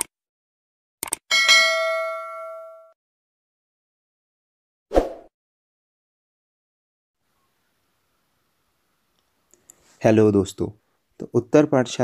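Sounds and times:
notification bell ding: 1.3s - 3.0s.

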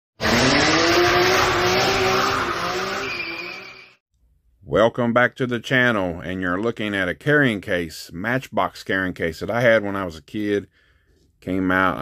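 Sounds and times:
race car engine drone: 0.2s - 3.8s.

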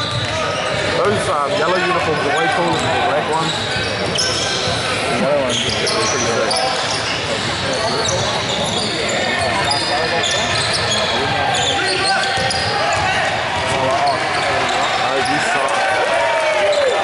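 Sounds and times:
sneaker squeaks: 0.0s - 1.1s, 1.7s - 15.7s
chatter and calls echoing: 0.0s - 17.0s.

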